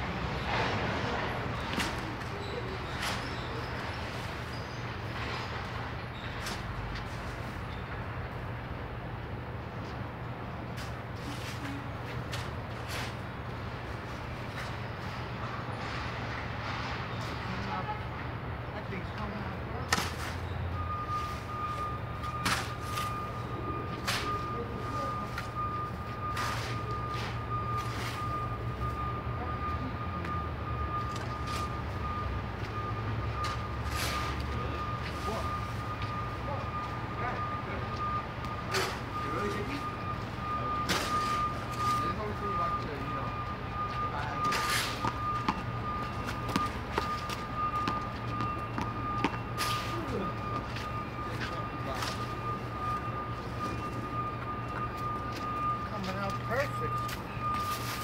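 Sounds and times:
continuous high-pitched tone: 0.0 - 58.0
low traffic rumble: 0.0 - 58.0.

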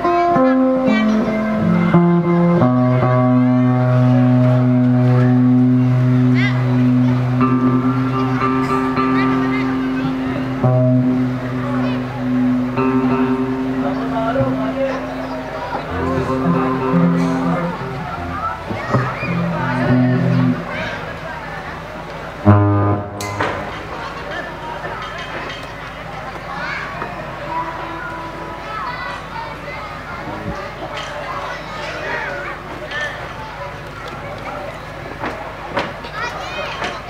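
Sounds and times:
loud low amplified note: 0.0 - 21.3, 22.4 - 24.1
electric guitars and bass chord: 0.0 - 24.6
background chatter: 0.0 - 37.0.

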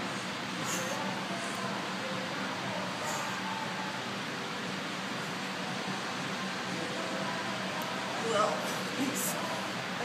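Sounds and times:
faint low ventilation hum: 0.0 - 10.0.

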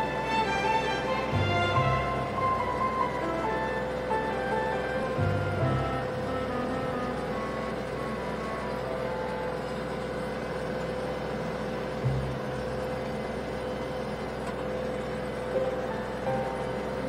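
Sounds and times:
background music: 0.0 - 9.5
tractor engine running: 0.0 - 17.0.

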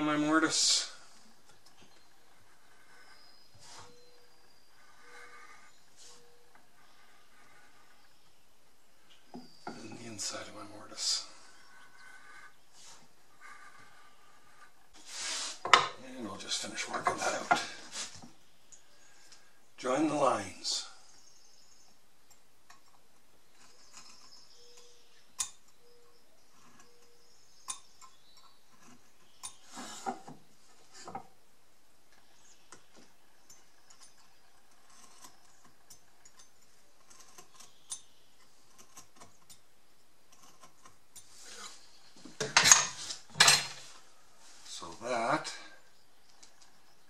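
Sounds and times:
knife scratching wood: 33.8 - 39.6, 40.3 - 41.9.

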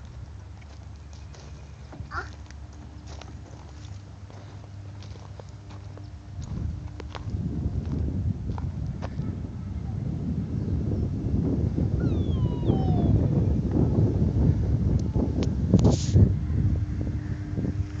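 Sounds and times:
footsteps crunching on mulch: 0.1 - 8.7.

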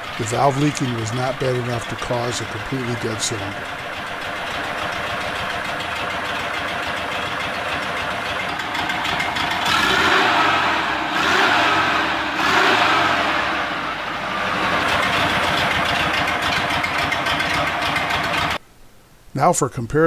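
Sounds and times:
engine idling: 0.0 - 18.6
engine revving: 0.0 - 18.6.

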